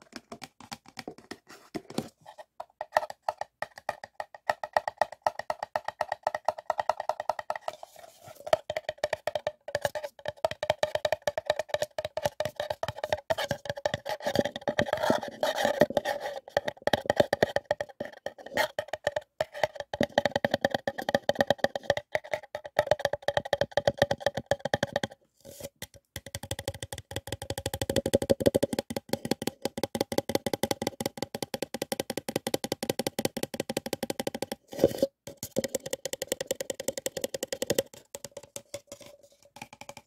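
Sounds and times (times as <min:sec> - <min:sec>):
fingertips tapping paper cup: 0:00.0 - 0:40.0.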